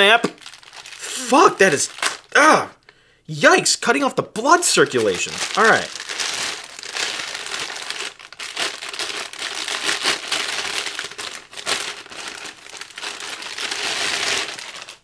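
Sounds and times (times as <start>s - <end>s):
plastic bag crinkling: 0.3s - 2.3s, 4.5s - 15.0s.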